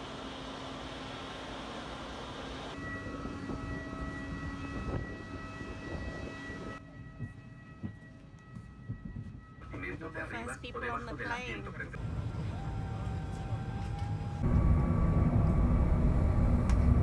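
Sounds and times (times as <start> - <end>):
jet airliner whine: 0.0 - 17.0.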